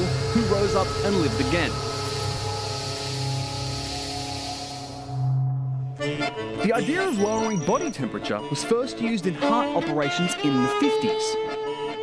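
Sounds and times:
steady hiss: 0.0 - 5.2
music of long held notes: 0.0 - 12.0.

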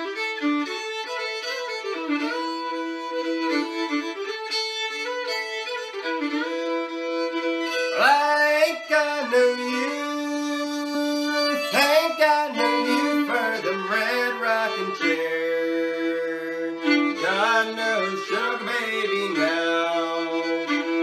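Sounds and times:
solo fiddle playing: 0.0 - 21.0.

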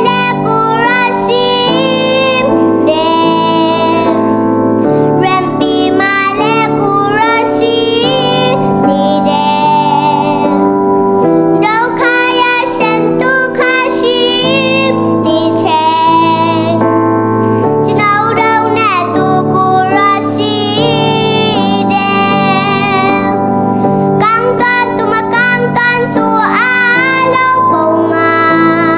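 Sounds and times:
electronic keyboard chords: 0.0 - 28.9
girl singing: 0.0 - 28.9.

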